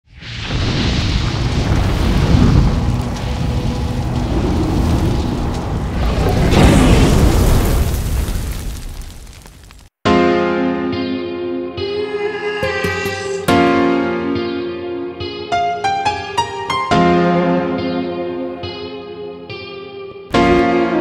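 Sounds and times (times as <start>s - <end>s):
rumbling explosion sound effect: 0.1s - 9.8s.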